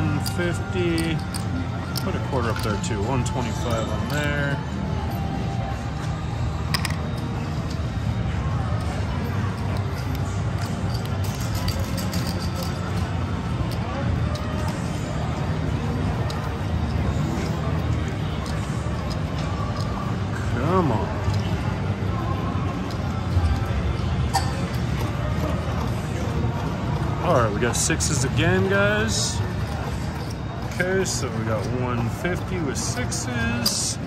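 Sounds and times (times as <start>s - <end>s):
murmur of voices: 0.0s - 34.0s
music: 0.0s - 34.0s
steady low hum: 0.0s - 34.0s.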